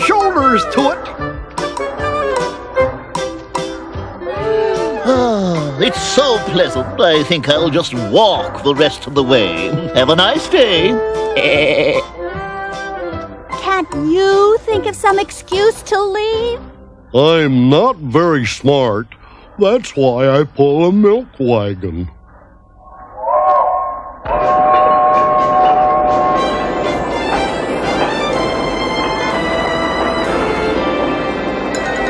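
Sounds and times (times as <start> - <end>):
background music: 0.0 - 18.7, 22.8 - 32.0
steam locomotive chime whistle: 24.3 - 32.0.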